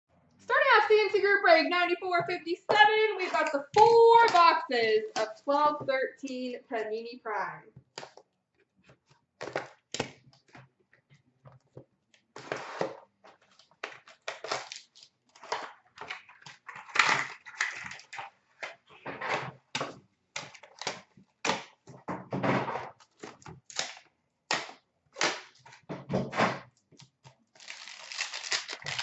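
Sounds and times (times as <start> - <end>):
cardboard and wrapper tearing: 13.6 - 18.2, 27.4 - 29.0.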